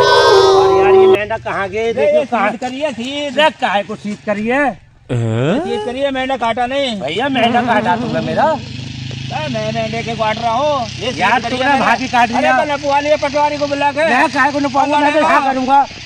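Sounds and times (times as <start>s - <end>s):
men talking heatedly: 1.1s - 15.9s
steady low drone: 7.2s - 9.2s.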